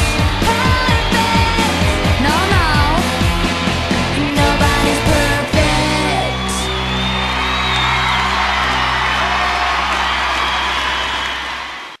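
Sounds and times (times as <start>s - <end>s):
audience cheering and screaming: 5.6s - 12.0s.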